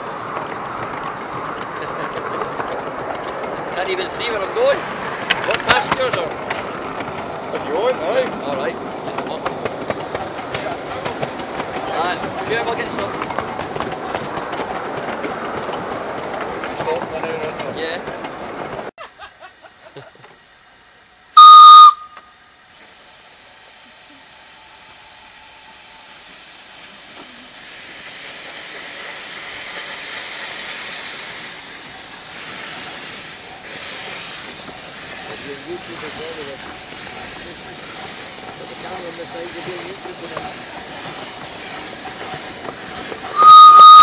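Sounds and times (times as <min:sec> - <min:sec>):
steam hiss: 0:03.8 - 0:44.0
steam locomotive whistle: 0:21.4 - 0:22.4, 0:43.3 - 0:44.0.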